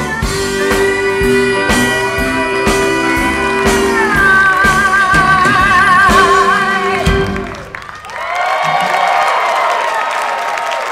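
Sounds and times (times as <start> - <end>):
audience applauding and cheering: 5.0 - 10.9.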